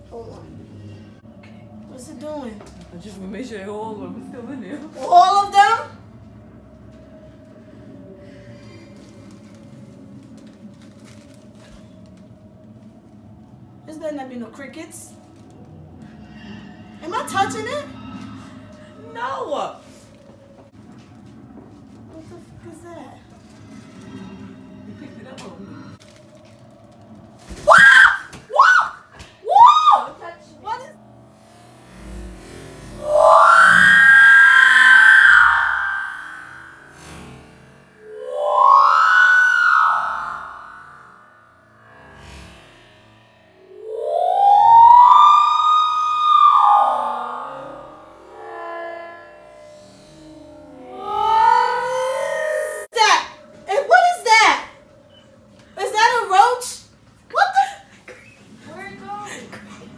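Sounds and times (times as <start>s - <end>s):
sliding pitched tones music: 0.0s - 59.9s
woman shrieking: 27.7s - 30.1s, 33.0s - 36.9s, 50.8s - 53.2s.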